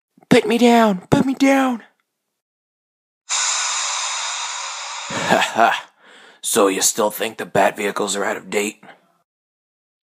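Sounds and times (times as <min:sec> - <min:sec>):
steady hissing: 0:03.3 - 0:05.5.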